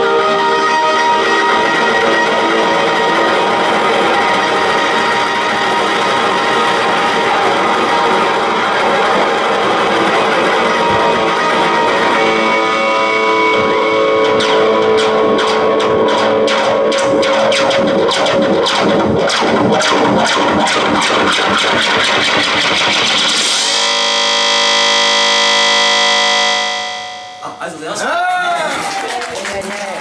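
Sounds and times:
electric guitar with effects: 0.0s - 27.6s.

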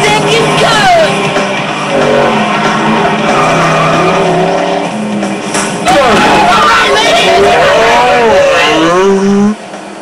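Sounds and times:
cartoon truck engine revving: 0.1s - 9.7s.

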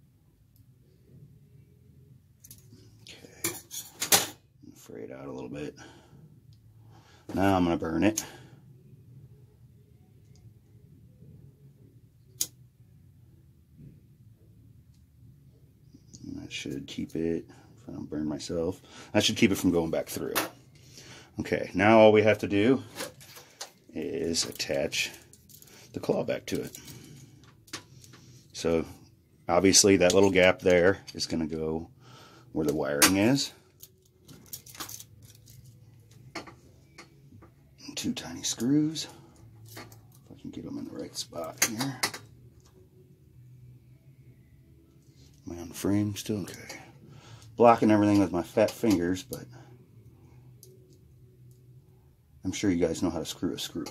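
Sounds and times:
low steady hum: 0.0s - 53.9s.

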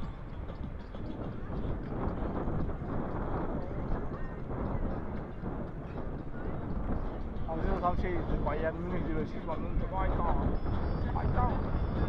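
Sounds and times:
wind buffeting microphone: 0.0s - 12.0s
faint voices of riders: 3.3s - 12.0s.

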